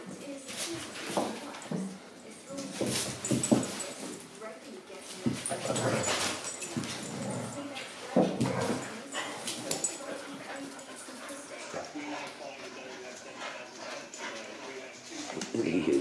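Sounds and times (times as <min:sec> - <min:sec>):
dogs scuffling: 0:00.0 - 0:16.0.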